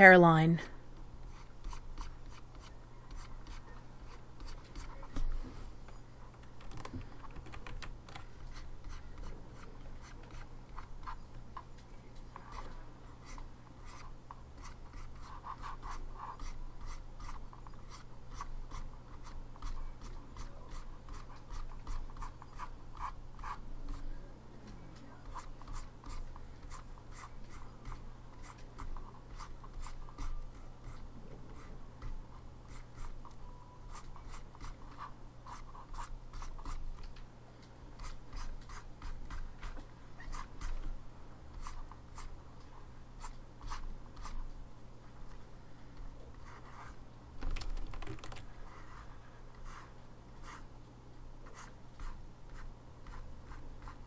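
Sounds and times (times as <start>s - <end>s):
stylus scratching on a tablet: 1.0s - 5.8s, 6.4s - 24.2s, 25.0s - 37.1s, 37.9s - 40.9s, 41.5s - 42.4s, 43.2s - 44.5s, 46.3s - 47.0s, 47.7s - 50.7s, 51.4s - 54.0s.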